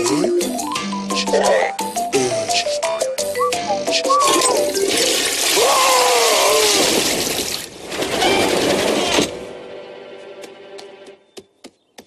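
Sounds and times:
toilet flushing: 0:04.8 - 0:05.6.

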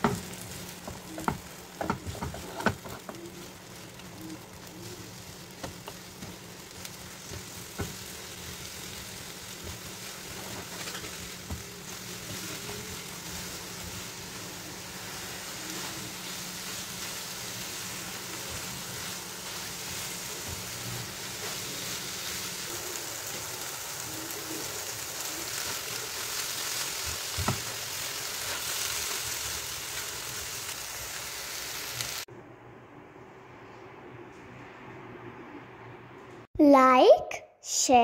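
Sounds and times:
eggs sizzling in a frying pan: 0:00.0 - 0:32.3
spatula scraping a pan: 0:09.6 - 0:13.5.

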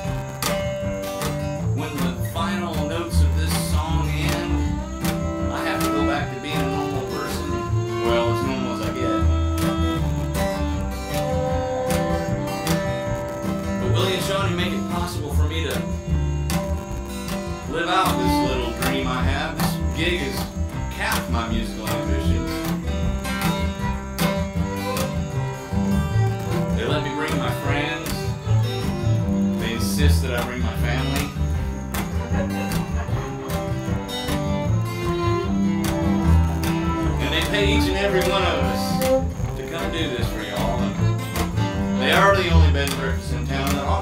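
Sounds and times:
fiddle phrases: 0:00.0 - 0:44.0
strummed acoustic guitar: 0:00.0 - 0:44.0
upright bass notes: 0:00.0 - 0:44.0.

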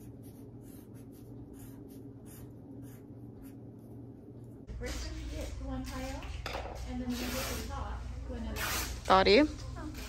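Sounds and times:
low steady hum: 0:00.0 - 0:10.0.

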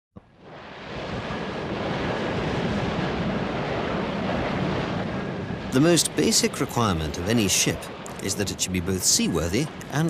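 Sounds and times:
steady rushing noise: 0:00.2 - 0:10.0.

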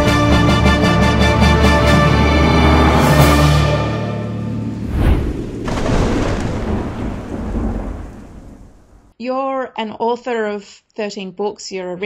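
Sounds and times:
deep thunder-like rumble: 0:04.3 - 0:09.1.

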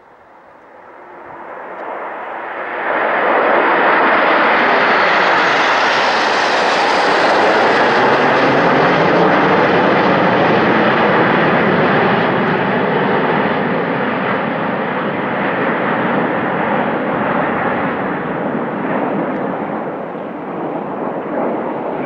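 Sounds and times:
jets flying overhead: 0:00.0 - 0:22.0.

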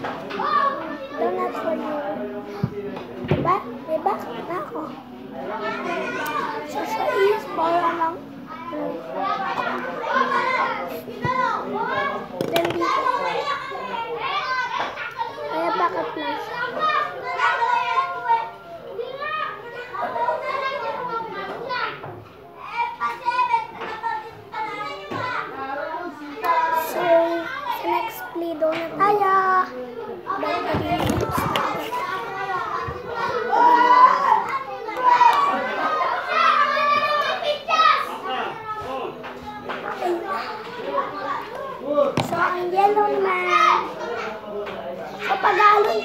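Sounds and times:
children chattering and calling out: 0:00.0 - 0:46.0
knocks on a table: 0:12.4 - 0:12.9.

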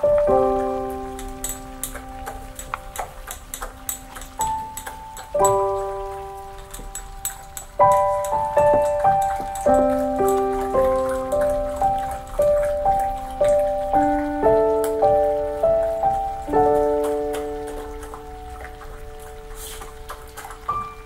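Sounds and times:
slow piano piece: 0:00.0 - 0:21.0
crackle of small clicks: 0:01.0 - 0:20.9.

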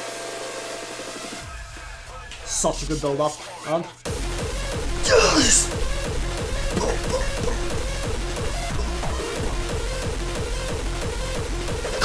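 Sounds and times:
distorted kick drums: 0:04.1 - 0:12.0.

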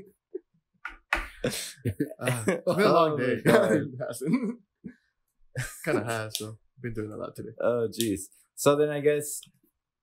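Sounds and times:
man speaking: 0:01.2 - 0:04.6, 0:05.6 - 0:09.4.

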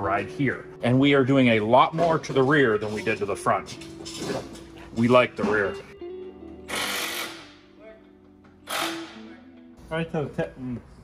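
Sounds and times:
background music: 0:00.0 - 0:11.0
power tool running: 0:06.7 - 0:07.6, 0:08.6 - 0:09.2.

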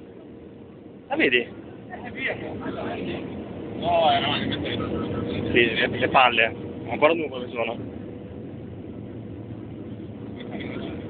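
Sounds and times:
aircraft cabin engine rumble: 0:00.0 - 0:11.0.

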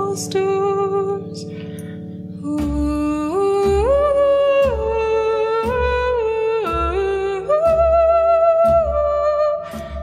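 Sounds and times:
plucked harp: 0:00.0 - 0:10.0.

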